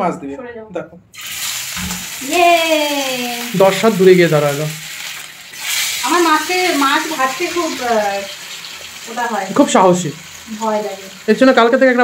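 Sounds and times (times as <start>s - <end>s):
fish sizzling in hot oil: 1.1s - 12.0s.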